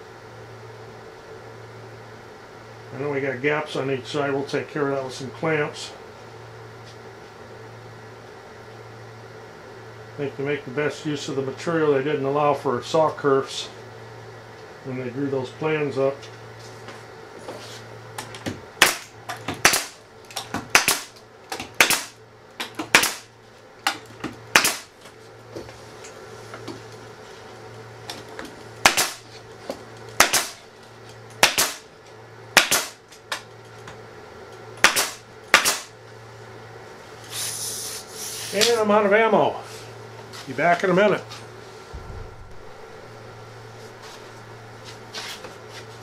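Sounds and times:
nail gun shots: 18.8s - 20.0s, 20.7s - 21.1s, 21.8s - 22.2s, 22.9s - 23.3s, 24.5s - 24.9s, 28.8s - 29.2s, 30.2s - 30.6s, 31.4s - 31.8s, 32.6s - 33.0s, 34.8s - 35.9s
air hiss: 37.3s - 38.6s.

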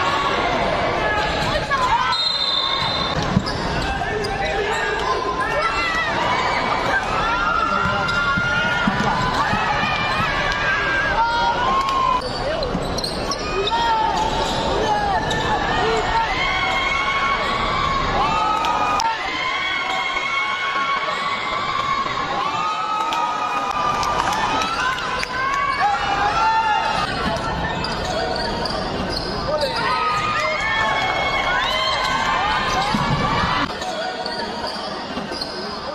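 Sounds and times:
shouts and chatter: 0.0s - 35.9s
sneakers squeaking on hardwood: 2.2s - 5.0s, 27.0s - 30.4s.

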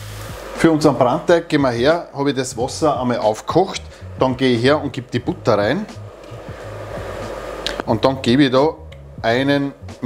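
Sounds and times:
water boiling in a pot: 0.0s - 1.9s.

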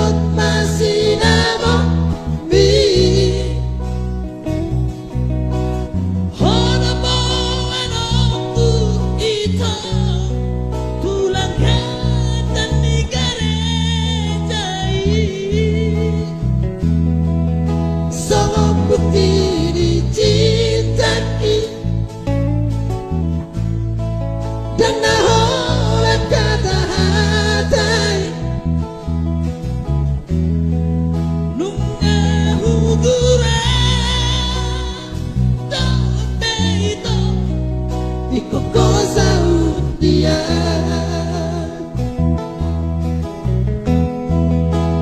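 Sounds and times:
male vocal group singing: 0.0s - 4.6s, 6.3s - 16.4s, 18.1s - 22.4s, 24.8s - 28.9s, 31.6s - 37.5s, 38.3s - 42.2s
acoustic guitar: 0.0s - 45.0s
bass line: 0.0s - 45.0s
electric guitar: 0.0s - 45.0s.

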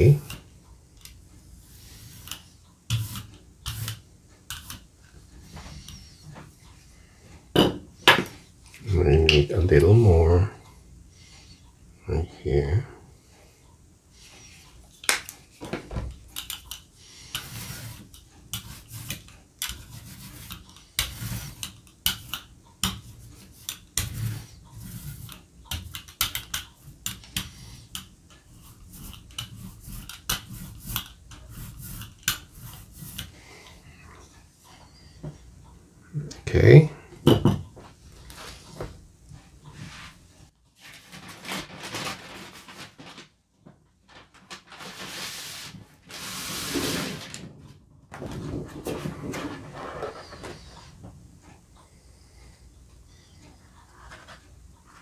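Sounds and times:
hand tool scraping printing plate: 1.8s - 4.8s, 17.2s - 35.1s
paper rustling: 40.8s - 50.6s.

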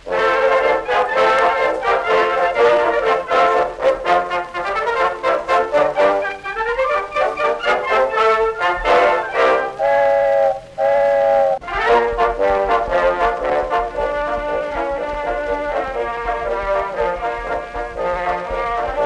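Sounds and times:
brass music: 0.0s - 19.0s.

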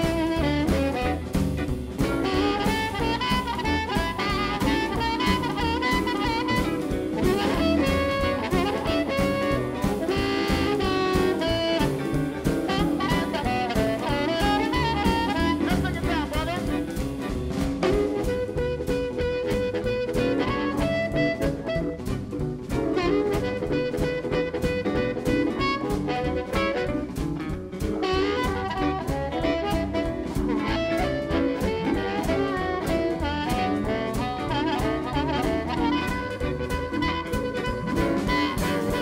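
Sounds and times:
harmonica solo: 0.0s - 27.1s, 27.9s - 39.0s
drum beat: 0.0s - 39.0s
electric guitar: 0.0s - 39.0s
keyboard: 0.0s - 39.0s
upright bass: 0.0s - 39.0s.

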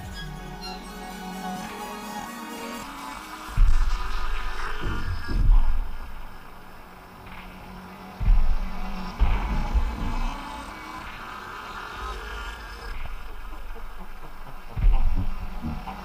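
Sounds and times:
electronic music with drone: 0.0s - 16.0s
deep bass thuds: 3.5s - 11.2s, 12.9s - 16.0s.

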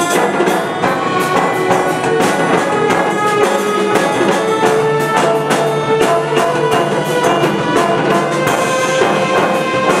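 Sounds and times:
brass and saxophones holding chords: 0.0s - 10.0s
percussion steady beat: 0.0s - 10.0s.

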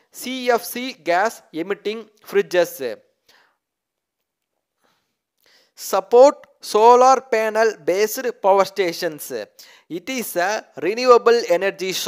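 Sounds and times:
faint breath sounds: 3.2s - 3.6s, 4.8s - 5.8s.

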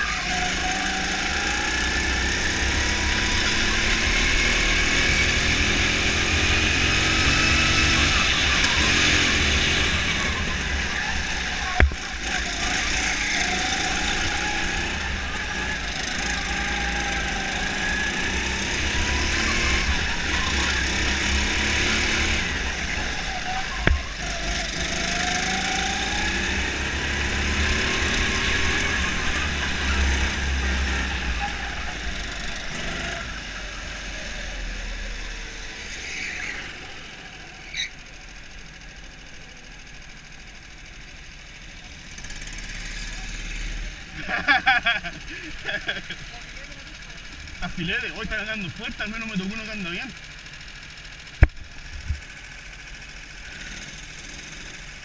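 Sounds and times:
go-kart engine revving: 0.0s - 55.0s.

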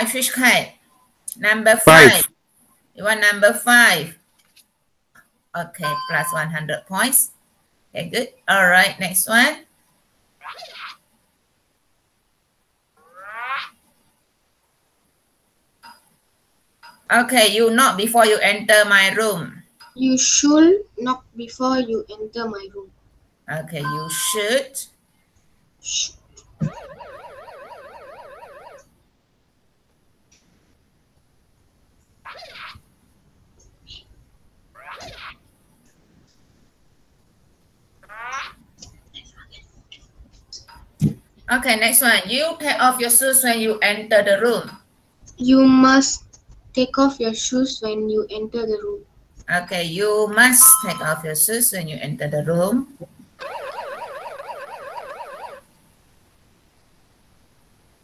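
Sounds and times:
warbling electronic tone: 26.5s - 28.9s, 50.5s - 51.2s, 53.4s - 55.7s
wavering tone: 50.5s - 51.2s.

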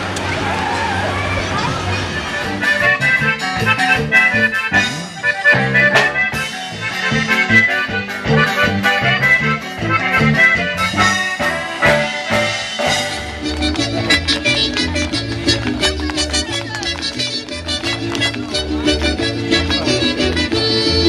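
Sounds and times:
street crowd noise: 0.0s - 21.0s
live band playing latin dance music: 1.6s - 21.0s.

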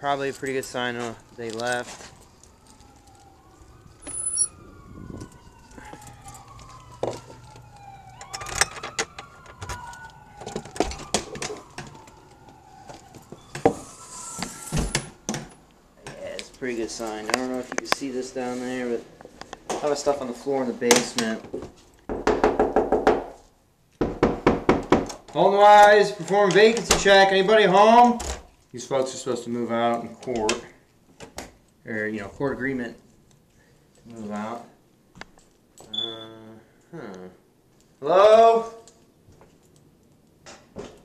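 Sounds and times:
distant siren wailing: 0.1s - 19.1s.

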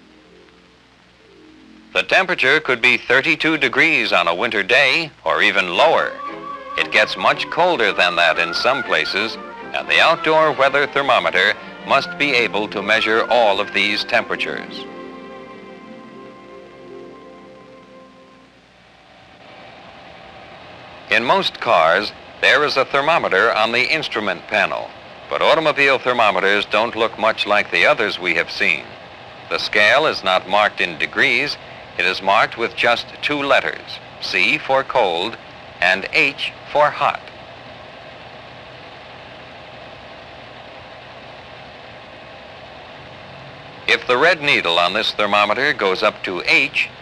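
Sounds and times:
film soundtrack hiss: 0.0s - 47.0s.

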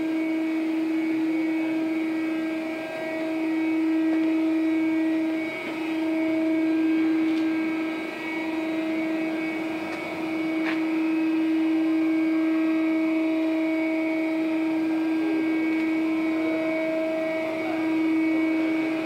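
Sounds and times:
machinery hum: 0.0s - 19.0s.

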